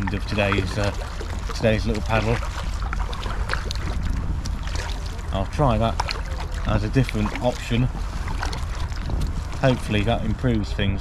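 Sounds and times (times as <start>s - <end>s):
kayak paddle splashes: 0.0s - 11.0s
steady low rumble: 0.0s - 11.0s.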